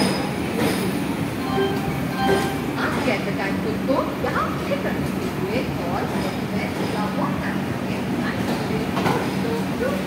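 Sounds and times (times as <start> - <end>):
train coaches rumbling: 0.0 - 10.0.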